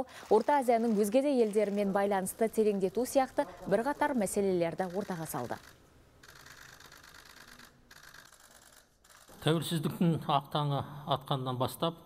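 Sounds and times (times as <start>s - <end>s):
camera shutters clicking: 4.8s - 9.4s.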